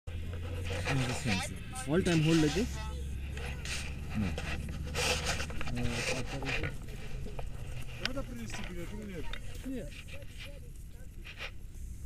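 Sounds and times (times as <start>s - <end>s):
steady low rumble: 0.1s - 12.0s.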